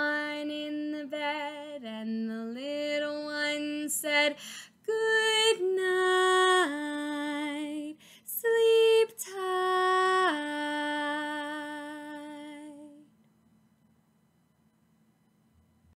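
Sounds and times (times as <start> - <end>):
woman singing unaccompanied: 0.0 - 13.1.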